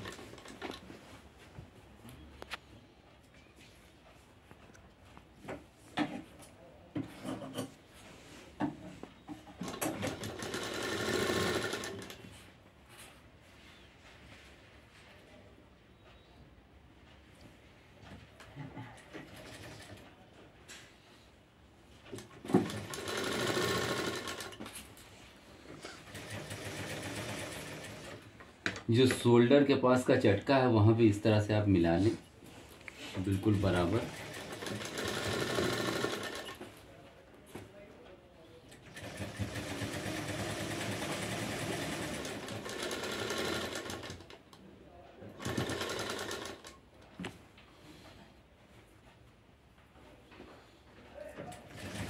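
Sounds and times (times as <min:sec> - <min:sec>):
sewing machine stitching: 0:00.0 - 0:00.8, 0:09.6 - 0:12.2, 0:22.4 - 0:24.7, 0:26.0 - 0:28.3, 0:33.5 - 0:36.6, 0:38.7 - 0:44.4, 0:45.4 - 0:46.8, 0:51.5 - 0:52.0.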